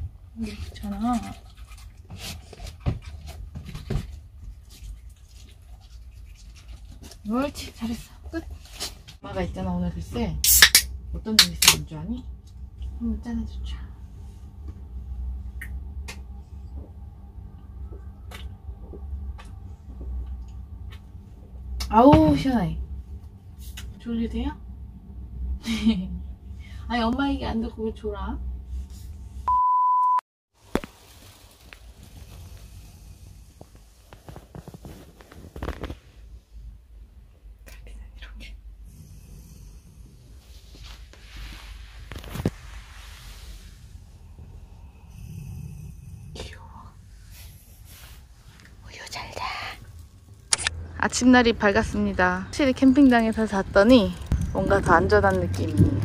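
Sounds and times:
high beep: 29.5 - 30.2
faint room noise: 30.6 - 56.0.

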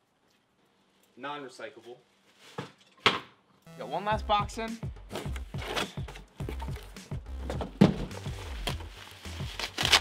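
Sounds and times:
background music with bass line: 3.7 - 10.0
plastic packing rustling: 8.5 - 10.0
knife slitting packing tape: 8.7 - 10.0.

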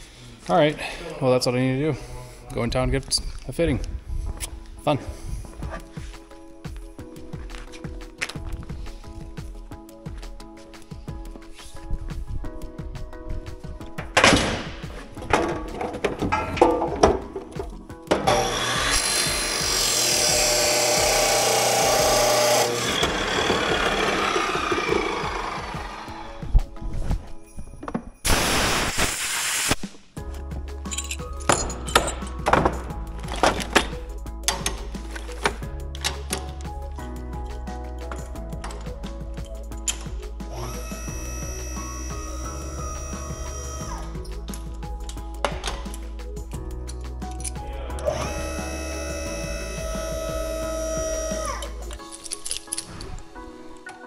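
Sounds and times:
music with steady beat: 5.5 - 18.3, 30.2 - 52.0
chop saw cutting hose: 18.1 - 26.4, 40.5 - 44.2, 48.0 - 51.8
saw wheel spinning down: 18.2 - 26.5, 40.5 - 44.1, 48.0 - 51.8.

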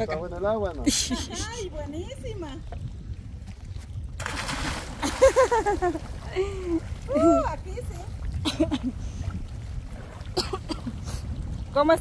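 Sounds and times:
splash into water: 4.2 - 7.4
burst of laughter: 5.0 - 6.0.

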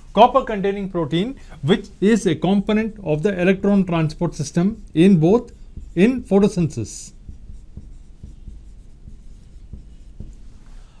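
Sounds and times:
marker writing on whiteboard: 1.7 - 11.0
small irregular marker taps: 3.4 - 10.8.

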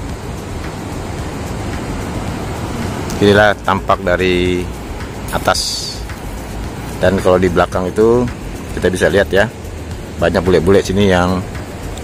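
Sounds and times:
surf breaking on shore: 0.0 - 12.0.

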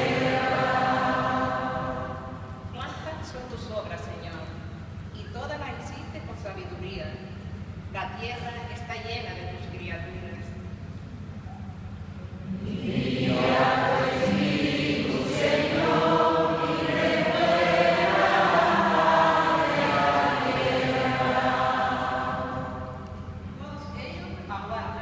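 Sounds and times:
group singing in church: 0.0 - 2.7, 12.4 - 23.6.

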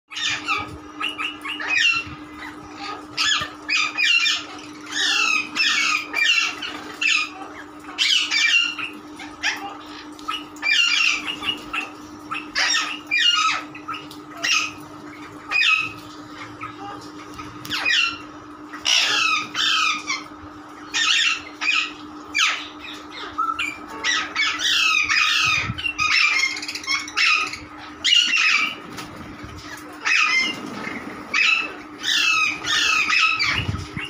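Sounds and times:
parakeets squawking: 0.1 - 34.0.

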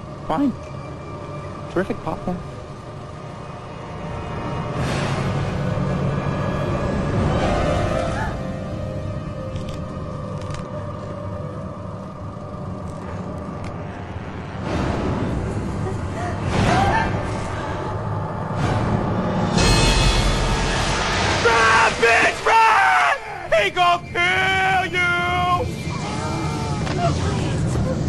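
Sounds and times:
tense film score music: 0.0 - 28.0
sudden loud hit: 18.6 - 22.4
high wavering voice yelling: 21.4 - 27.2.

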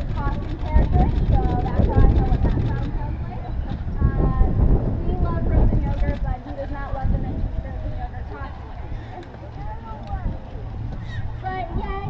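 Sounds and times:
indistinct talking: 0.0 - 12.0
steady low rumble: 0.0 - 12.0.

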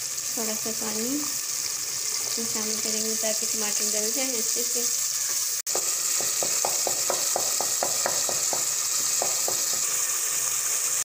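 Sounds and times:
masala sizzling in hot oil: 0.0 - 11.0.

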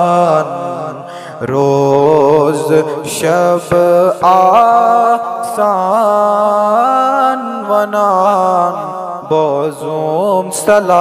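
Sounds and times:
man singing melismatic notes: 0.0 - 11.0.

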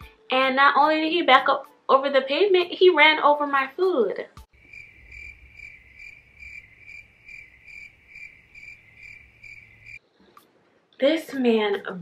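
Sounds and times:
crickets chirping: 4.5 - 10.0.

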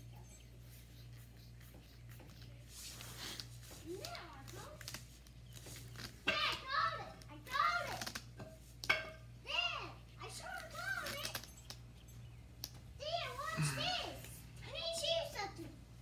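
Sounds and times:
child chattering: 13.0 - 15.6.

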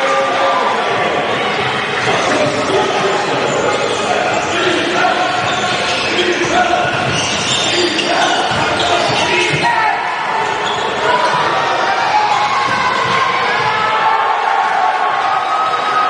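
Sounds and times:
people shouting in a hall: 0.0 - 16.0.

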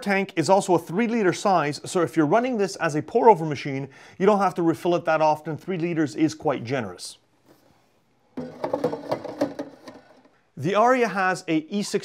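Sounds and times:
plastic water tank rattling and clicking: 8.4 - 10.4.

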